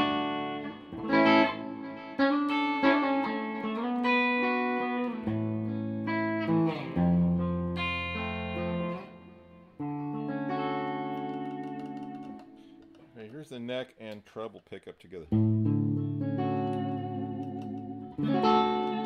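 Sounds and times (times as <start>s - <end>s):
clean electric guitar chords and notes: 0.0s - 13.2s, 15.2s - 19.0s.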